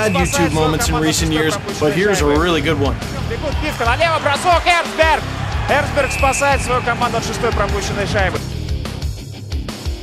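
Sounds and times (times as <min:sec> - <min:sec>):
man excited sports commentary: 0:00.0 - 0:08.6
backing music: 0:00.0 - 0:10.0.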